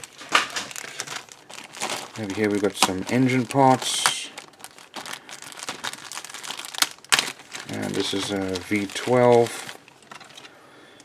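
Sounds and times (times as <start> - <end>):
plastic bag crinkling: 0.0 - 10.6.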